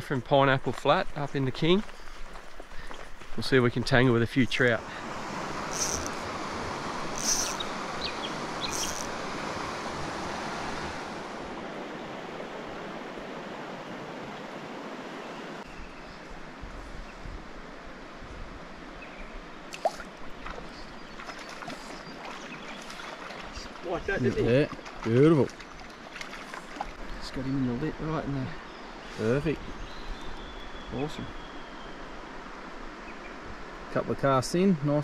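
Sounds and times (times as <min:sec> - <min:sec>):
creek water running over stones: 0:00.0 - 0:10.6, 0:19.7 - 0:28.2.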